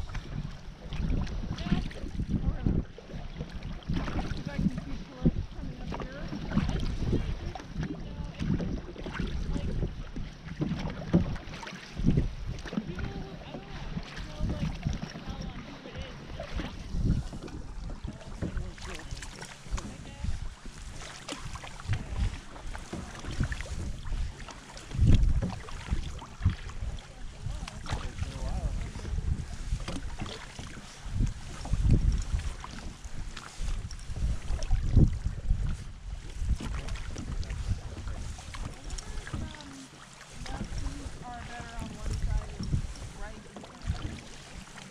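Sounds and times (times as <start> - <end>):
paddle strokes: 0.0 - 44.9
water sloshing and splashing: 0.0 - 44.9
wind rumbling on microphone: 0.0 - 44.9.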